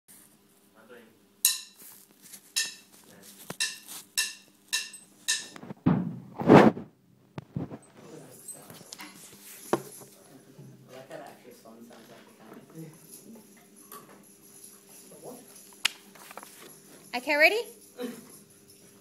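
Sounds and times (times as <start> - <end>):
heavy thumps: 5.6 - 7.7.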